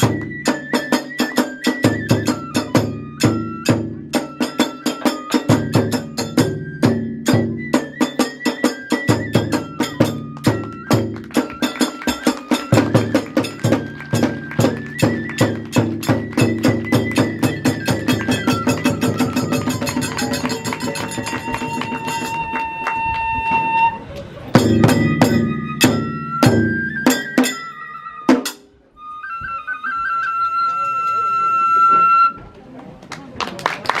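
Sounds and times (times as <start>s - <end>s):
hand cymbals: 0.0s - 22.6s, 24.6s - 28.7s
bamboo flute melody: 0.0s - 32.8s
taiko drum beat: 1.9s - 8.3s, 9.0s - 22.5s, 24.6s - 27.5s.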